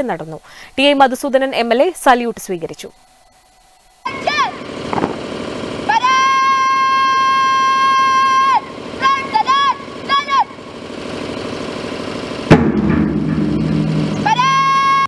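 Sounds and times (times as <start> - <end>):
woman shouting drill commands: 4.1 - 4.7, 5.8 - 10.7, 14.2 - 15.0.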